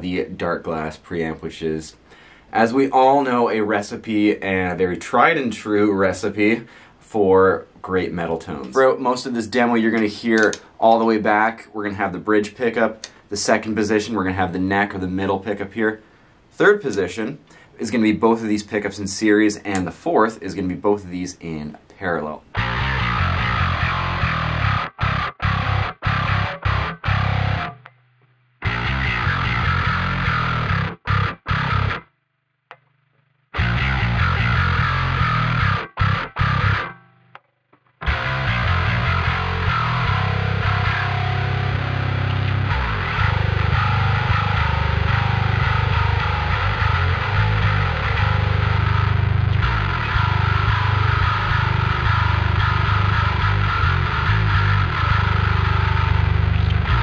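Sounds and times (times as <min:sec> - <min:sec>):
electric bass played with fingers: 0:22.5 - 0:32.1, 0:33.6 - 0:37.4, 0:38.0 - 0:57.0.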